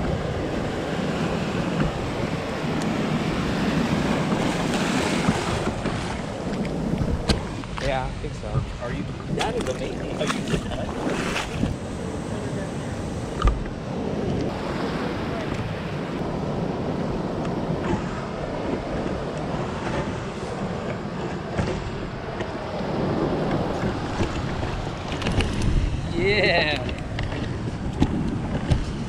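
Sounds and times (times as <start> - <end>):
surf washing: 0.0 - 29.0
wind buffeting microphone: 0.0 - 29.0.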